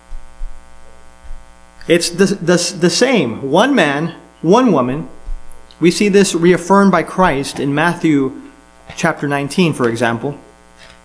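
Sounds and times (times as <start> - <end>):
electrical mains hum: 0.0 - 11.0
man speaking: 1.8 - 5.2, 5.8 - 10.5
low thumps: 5.0 - 5.7.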